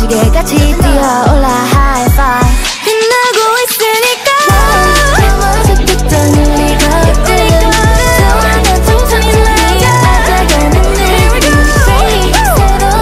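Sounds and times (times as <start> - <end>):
steady drum beat: 0.0 - 3.6, 4.5 - 13.0
female vocals: 0.0 - 13.0
heavy bass line: 4.5 - 13.0.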